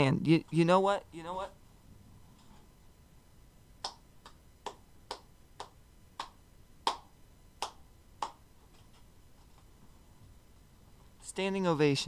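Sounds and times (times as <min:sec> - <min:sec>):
slow single hand claps: 0:03.8 - 0:08.4.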